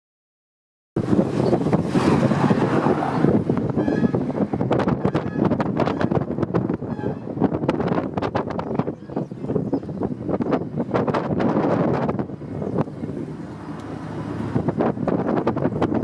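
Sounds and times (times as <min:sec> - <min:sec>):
rumble of moving vehicle: 0:01.0 - 0:16.0
wind buffeting microphone: 0:01.0 - 0:16.0.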